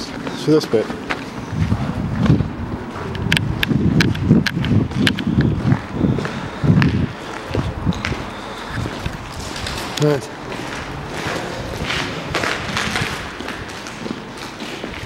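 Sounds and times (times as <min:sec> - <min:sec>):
footsteps on concrete: 0:00.0 - 0:15.0.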